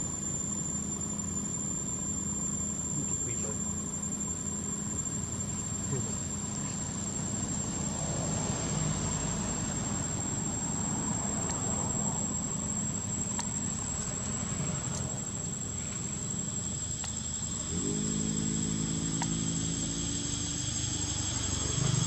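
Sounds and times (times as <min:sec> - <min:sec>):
crickets trilling: 0:00.0 - 0:22.0.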